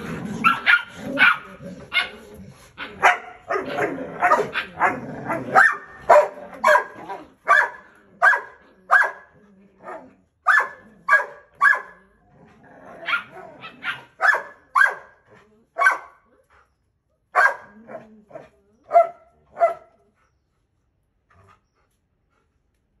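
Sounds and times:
puppy barking: 0.4s - 2.2s, 2.8s - 12.0s, 13.0s - 15.2s, 15.8s - 16.2s, 17.3s - 17.8s, 18.9s - 19.9s.

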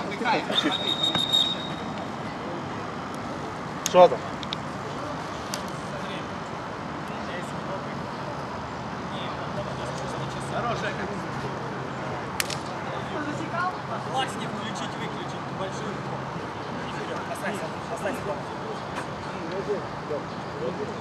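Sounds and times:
city traffic hum: 0.0s - 21.0s
distant voices: 0.0s - 21.0s
sharp click: 12.4s - 12.7s.

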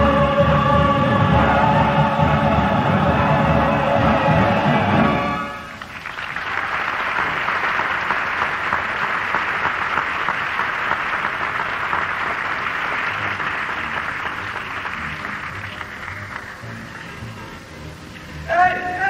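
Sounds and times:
audience applauding: 5.0s - 18.5s.

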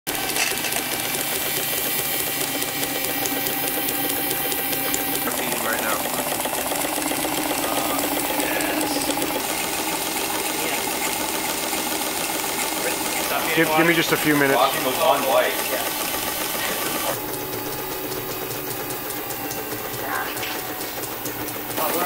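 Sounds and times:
steam engine mechanical clatter: 0.1s - 22.0s.

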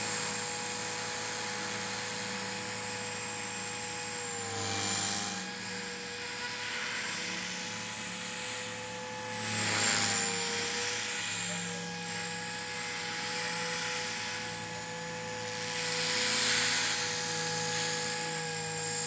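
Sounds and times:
rc helicopter motor whine: 0.0s - 19.0s
rotor blade rushes: 0.0s - 19.0s.

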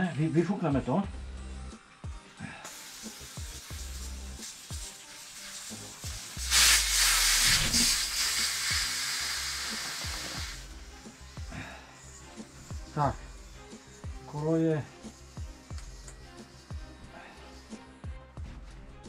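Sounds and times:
air hissing out of bicycle tyre: 2.4s - 17.9s.

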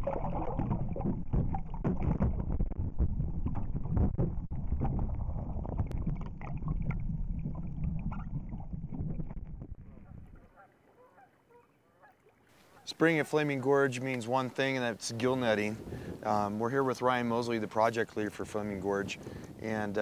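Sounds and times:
water sloshing and splashing: 0.0s - 12.8s.

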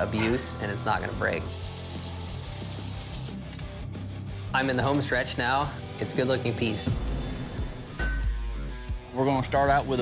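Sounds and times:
background music with low bass: 0.0s - 10.0s.

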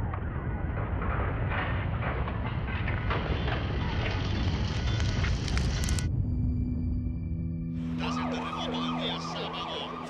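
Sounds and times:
shaken building contents rattling: 0.0s - 6.0s
deep earthquake rumble: 0.0s - 8.0s.

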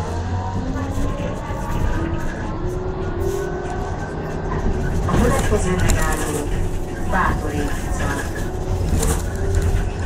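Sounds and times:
low rumble of ride: 0.0s - 10.0s.

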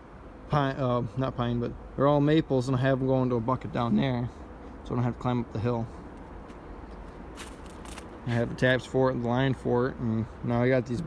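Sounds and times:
low outdoor rumble: 0.0s - 11.0s
sharp clicks or crunches: 7.4s - 8.2s.

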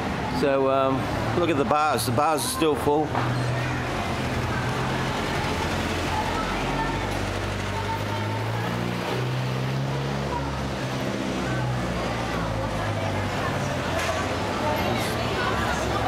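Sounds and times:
traffic running: 0.0s - 16.0s.

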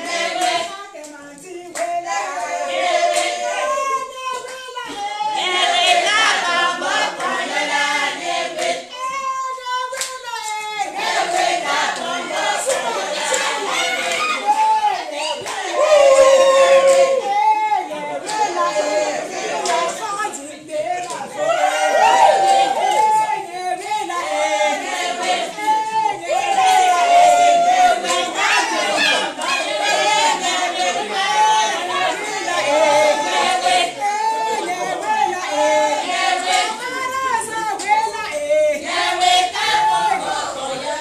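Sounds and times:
women singing together: 0.0s - 41.0s
hand clapping: 0.4s - 2.0s, 9.9s - 10.7s, 19.6s - 21.3s.

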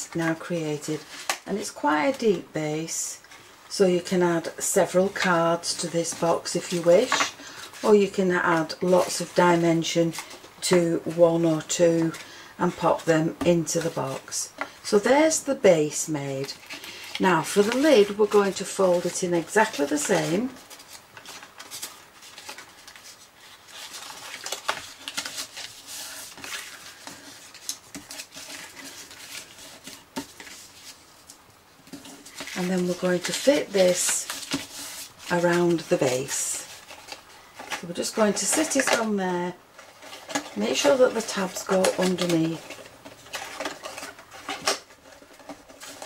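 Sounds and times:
card rustling and scraping: 16.4s - 39.1s, 39.7s - 46.0s.

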